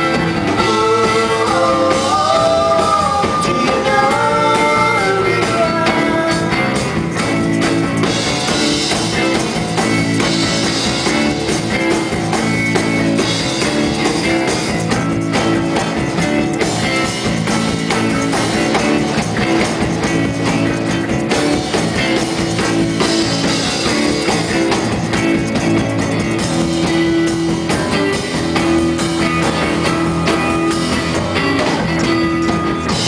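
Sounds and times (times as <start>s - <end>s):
drum kit: 0.0s - 33.0s
steady held notes: 0.1s - 33.0s.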